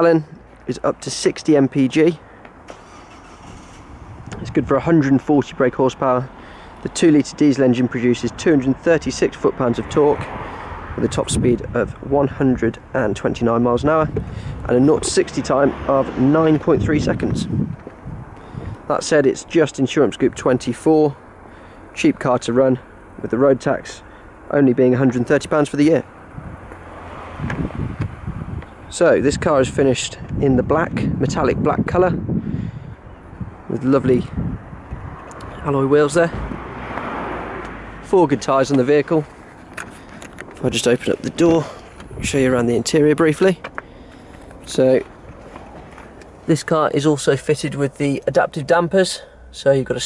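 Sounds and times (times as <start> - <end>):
man's voice: 0.0 - 2.2, 4.3 - 17.6, 28.9 - 32.3, 38.1 - 39.4, 40.6 - 43.7, 44.6 - 45.1, 46.4 - 50.0
car passing on road: 0.0 - 29.4, 32.2 - 50.0
wind on microphone: 3.5 - 4.8, 13.8 - 15.3, 16.1 - 18.9, 26.3 - 35.7, 36.3 - 37.7, 41.5 - 42.6.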